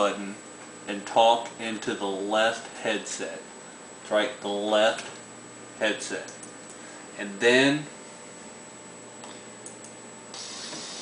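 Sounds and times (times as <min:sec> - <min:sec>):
faint steady hiss: 0:10.3 - 0:11.0.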